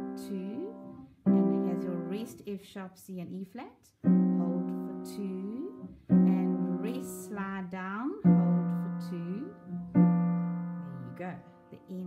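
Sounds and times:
piano chords: 0:00.0 - 0:02.4, 0:04.0 - 0:12.0.

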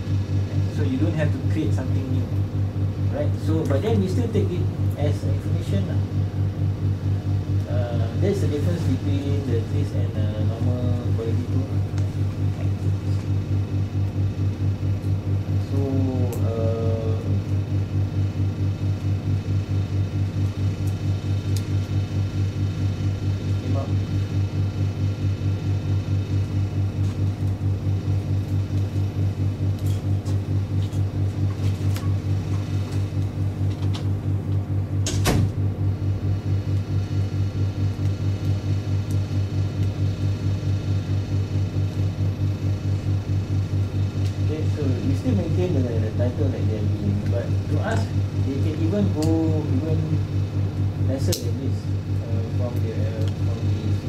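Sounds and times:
low room hum: 0:00.0 - 0:54.0.

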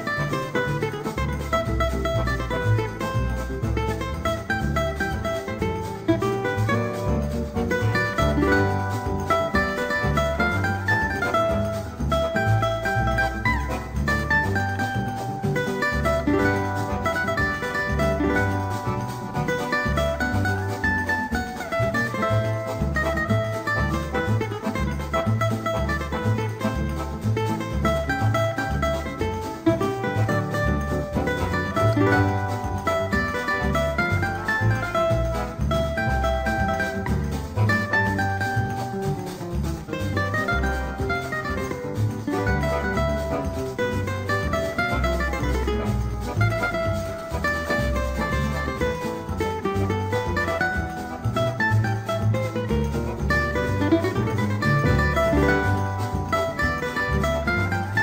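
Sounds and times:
bass pulse: 0:00.0 - 0:58.0
cavaquinho playing samba melody: 0:00.0 - 0:58.0.

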